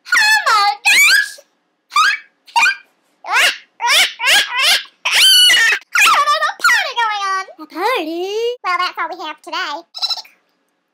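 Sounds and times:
high squeaky voice squealing: 0.0 - 6.9, 9.9 - 10.4.

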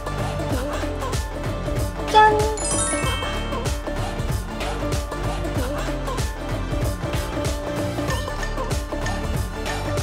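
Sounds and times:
upbeat background music: 0.0 - 10.0
bright bell-like ding: 2.2 - 4.1
high twinkling notes: 2.2 - 4.1.

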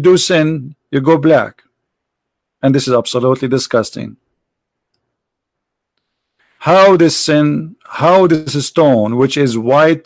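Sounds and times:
man speaking: 0.0 - 1.6, 2.6 - 4.2, 6.6 - 10.0
faint click: 4.9 - 5.1.

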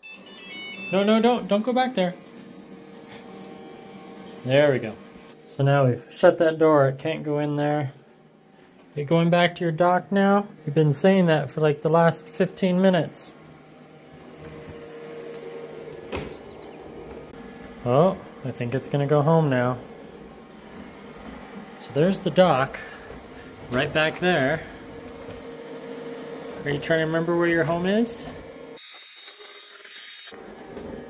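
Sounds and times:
robot vacuum humming: 0.0 - 31.0.

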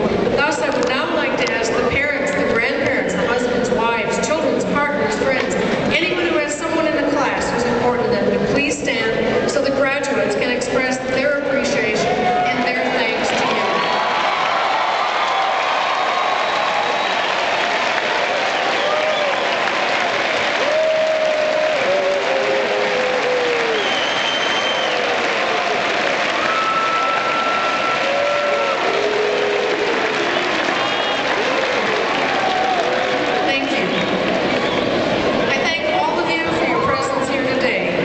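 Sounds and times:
crowd applause: 13.1 - 36.2.

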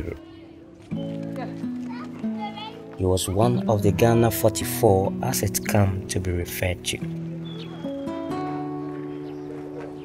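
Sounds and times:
faint children's voices: 0.0 - 4.9, 6.5 - 10.0
background music of held low notes: 0.0 - 10.0
street ambience: 0.0 - 10.0.

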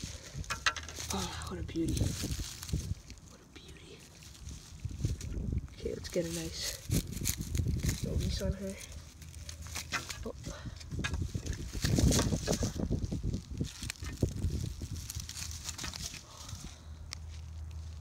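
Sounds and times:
pine needles rustling and crackling: 0.0 - 18.0.

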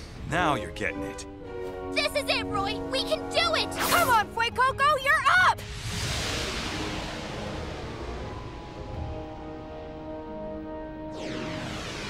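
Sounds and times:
rushing whoosh effect: 5.6 - 9.8
low rumble: 5.6 - 12.0.

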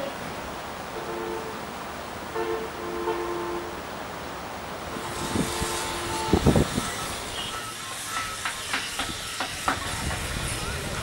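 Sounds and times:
road traffic: 0.0 - 11.0
car horn blasts: 2.3 - 3.8, 5.0 - 6.7, 7.3 - 7.7.

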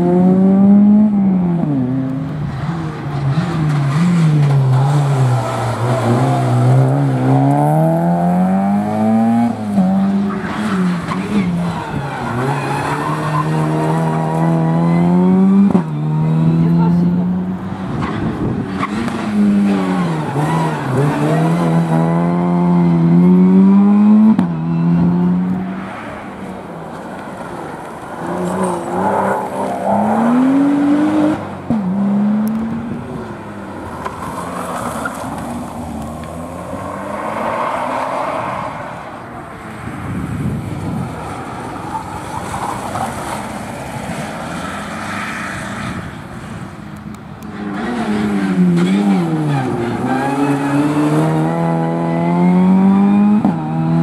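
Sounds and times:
rally car accelerating hard: 0.0 - 26.0, 28.1 - 33.2, 47.5 - 54.0
quieter rally car revving: 0.0 - 54.0.

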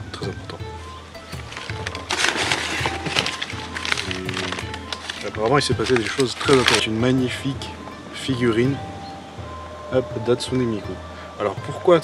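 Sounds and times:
background music: 0.0 - 12.0
newspaper rustling and crackling: 1.3 - 7.2.

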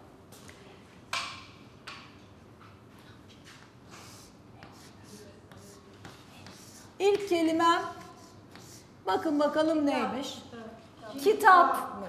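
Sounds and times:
chalk scraping on blackboard: 3.5 - 9.0
chalk clicking: 4.0 - 8.9.

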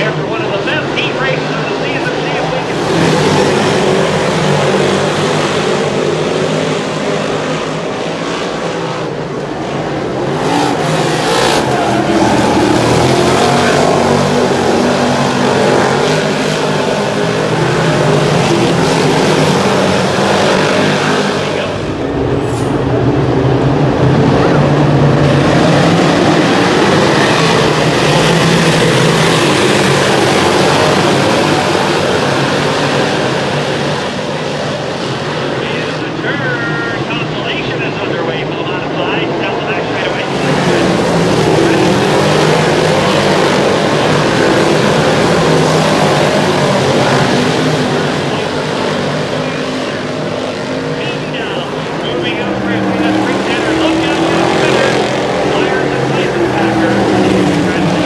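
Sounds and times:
race car engines at speed: 0.0 - 58.0.

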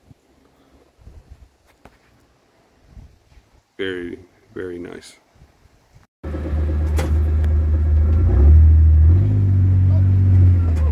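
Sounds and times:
vehicle engine rumbling: 6.2 - 10.9.

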